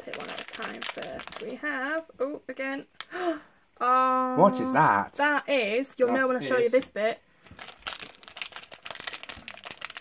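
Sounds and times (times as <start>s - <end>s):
plastic packet crinkling: 0.0s - 2.1s, 7.4s - 10.0s.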